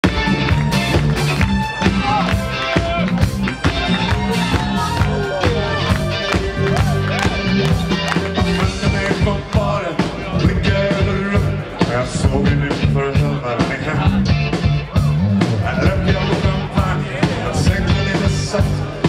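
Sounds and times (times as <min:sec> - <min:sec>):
bass line: 0:00.0 - 0:19.0
drums keeping a steady beat: 0:00.0 - 0:19.0
electric guitar: 0:00.0 - 0:19.0
keyboards: 0:00.0 - 0:19.0
man singing lead vocals: 0:08.3 - 0:19.0.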